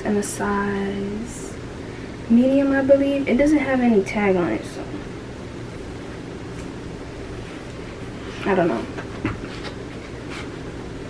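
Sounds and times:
room hiss and hum: 0.0 - 11.0.

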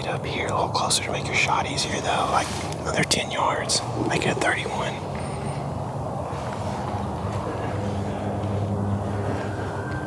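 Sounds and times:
steady low drone: 3.0 - 10.0.

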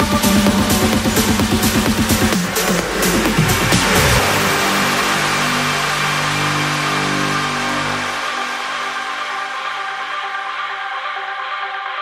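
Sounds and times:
sustained low synth chord: 1.2 - 9.9.

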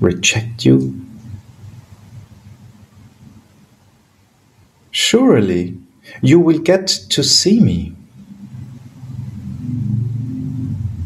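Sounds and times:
faint hum: 0.0 - 11.0
low steady rumble: 0.0 - 11.0.

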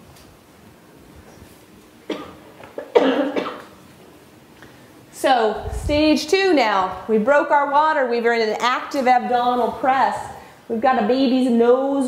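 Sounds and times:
woman coughing: 2.1 - 3.8.

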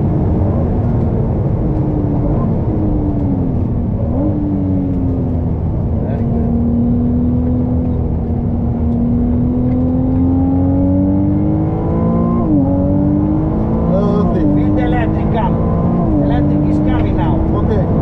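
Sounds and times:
sports car engine accelerating: 0.0 - 18.0.

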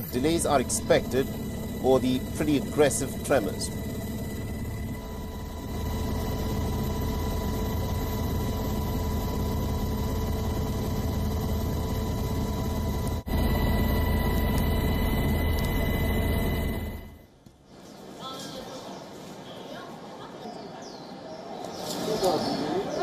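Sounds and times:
aircraft engine rumble: 0.0 - 17.2
steady engine whine: 0.0 - 17.3.

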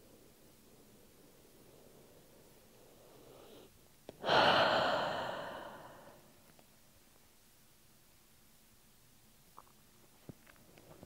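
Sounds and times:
woman inhaling: 3.2 - 6.3
woman sighing: 4.2 - 6.2.

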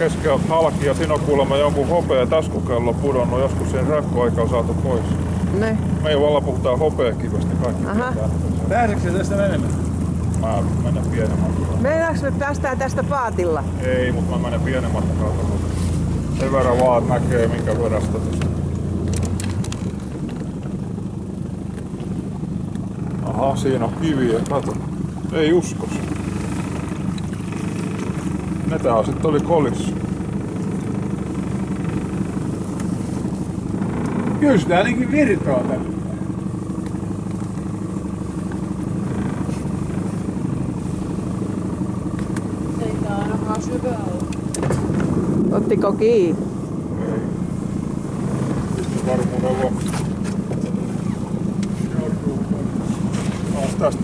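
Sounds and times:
small boat motor running: 0.0 - 54.0.

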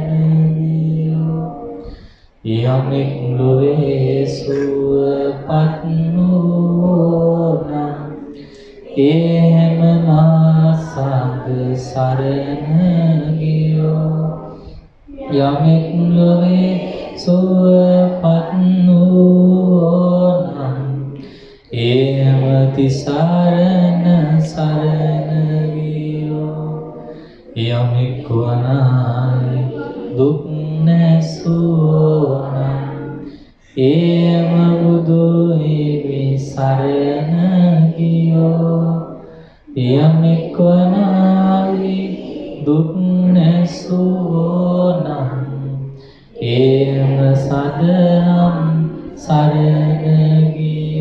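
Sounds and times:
man chanting: 0.0 - 51.0
man breathing: 1.8 - 2.4, 8.3 - 8.9, 21.2 - 21.7, 39.2 - 39.7, 46.0 - 46.4.

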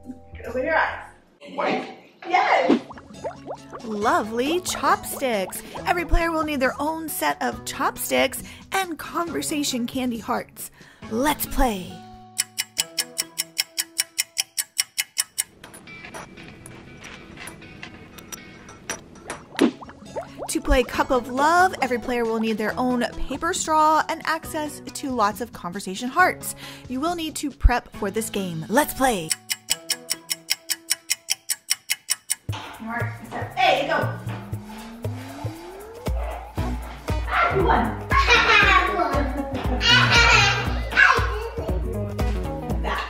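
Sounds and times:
music: 0.0 - 1.1, 2.8 - 14.8, 15.6 - 43.0
fast clock ticking: 12.4 - 15.6, 28.8 - 33.0
held musical tone: 33.6 - 42.8.

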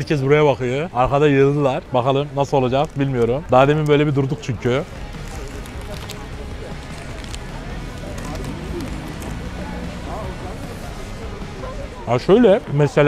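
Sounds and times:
indistinct voices: 0.0 - 13.0
low street rumble: 0.0 - 13.0.

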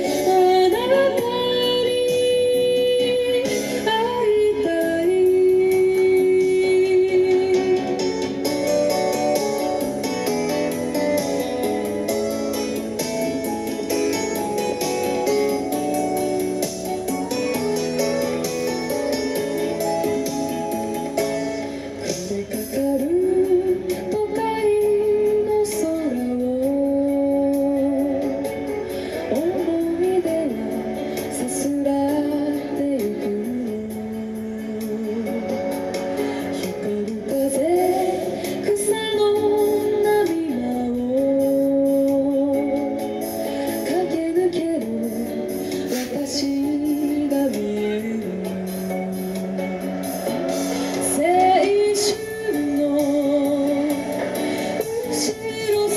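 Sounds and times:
woman singing a pop ballad: 0.0 - 49.9, 50.8 - 55.9
guitar accompaniment: 0.0 - 55.9.

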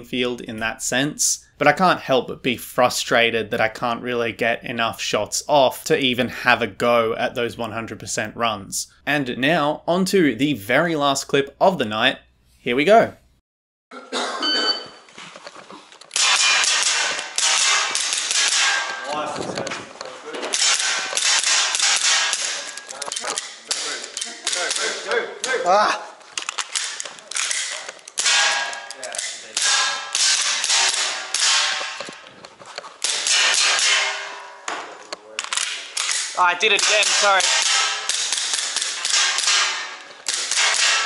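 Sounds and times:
gels hitting metal targets: 16.1 - 19.3, 20.3 - 25.6, 26.4 - 32.4, 33.0 - 41.0.

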